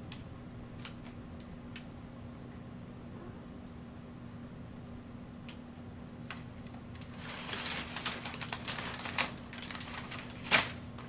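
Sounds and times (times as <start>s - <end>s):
packing paper crackling and rustling: 6.3s - 11.0s.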